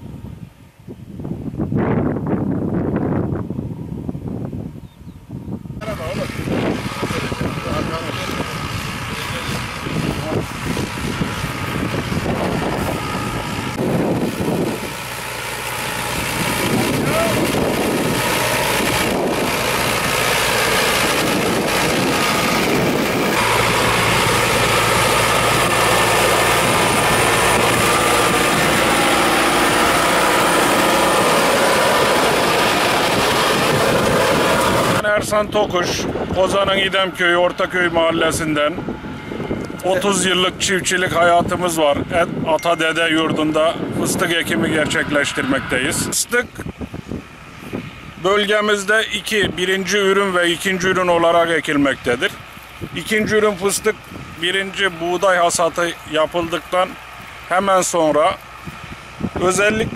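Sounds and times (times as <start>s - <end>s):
tractor diesel engine running: 5.8s - 59.9s.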